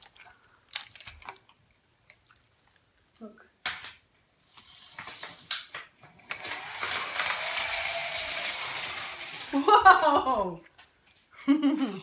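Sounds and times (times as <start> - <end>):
plastic toys clicking and rustling: 0.0 - 2.3, 3.7 - 10.2.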